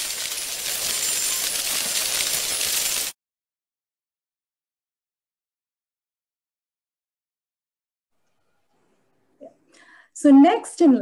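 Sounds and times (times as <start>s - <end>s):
bright tinkling and hissing: 0.0s - 3.2s.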